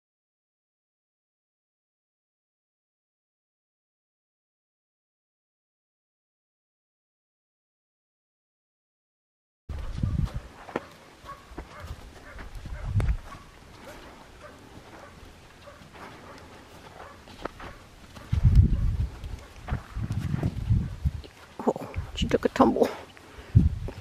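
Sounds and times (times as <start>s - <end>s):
hoof steps on sand: 9.7s - 21.6s.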